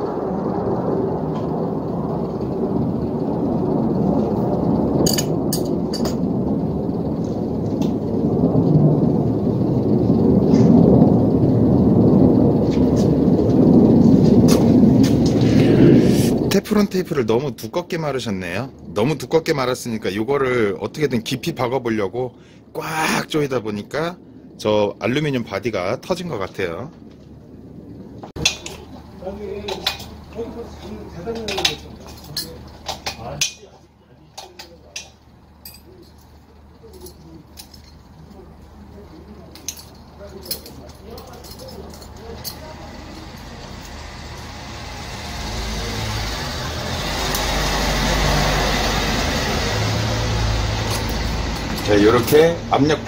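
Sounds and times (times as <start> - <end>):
low rumble with hiss: 0.0 - 53.0
hand tools clinking on metal: 29.6 - 44.5, 50.8 - 52.6.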